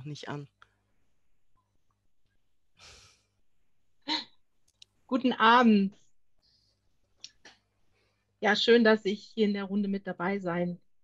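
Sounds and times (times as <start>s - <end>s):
faint exhale into microphone: 2.8s - 3.3s.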